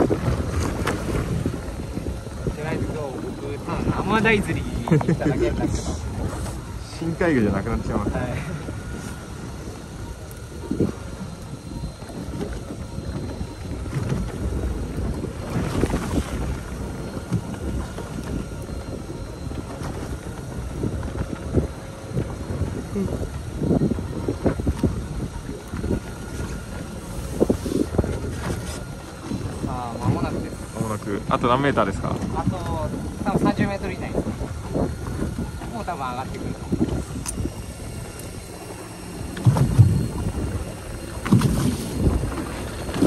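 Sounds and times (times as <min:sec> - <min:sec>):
water washing around a boat: 0:00.0 - 0:43.0
wind buffeting microphone: 0:00.0 - 0:43.0.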